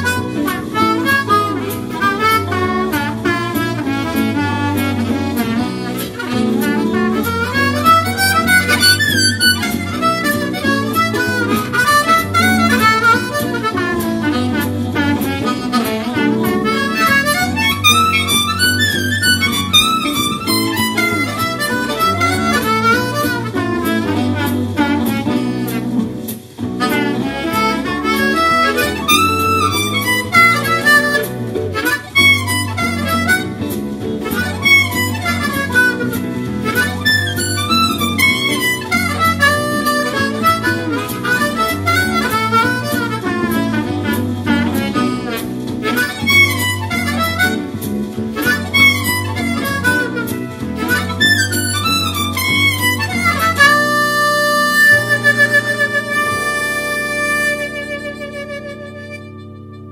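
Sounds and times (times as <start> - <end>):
harmonica playing boogie tune: 0.0 - 59.9.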